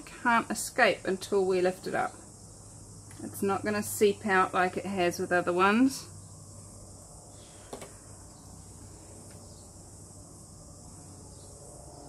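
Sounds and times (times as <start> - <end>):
insects chirring: 0.0 - 12.0.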